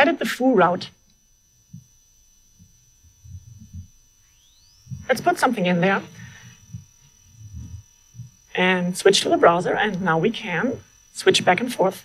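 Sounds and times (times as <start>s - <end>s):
high-pitched electrical whine: 0.0s - 12.0s.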